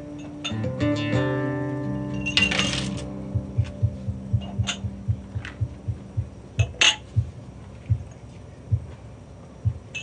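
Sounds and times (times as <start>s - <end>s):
soft low thumps: 3.0s - 10.0s.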